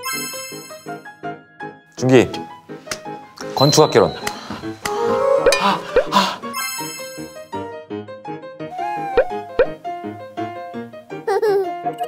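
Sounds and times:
light background music: 0.0s - 12.0s
rising pop sound effects: 8.8s - 9.8s.

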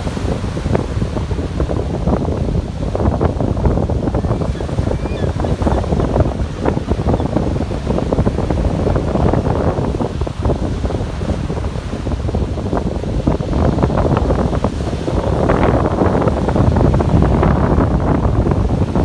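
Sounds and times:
ocean surf breaking on beach: 0.0s - 19.0s
wind buffeting microphone: 0.0s - 19.0s.

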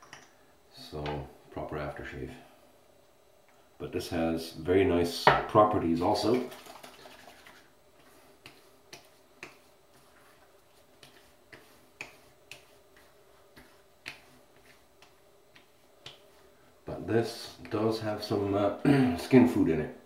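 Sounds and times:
hands patting face: 6.6s - 16.5s.

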